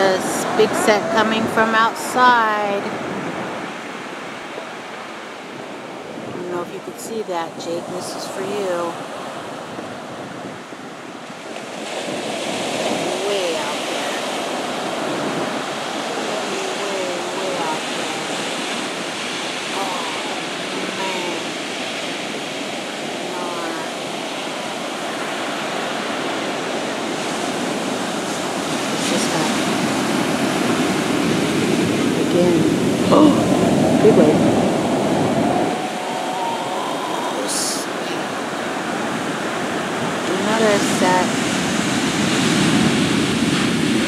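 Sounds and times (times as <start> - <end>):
ocean waves breaking: 0.0 - 44.0.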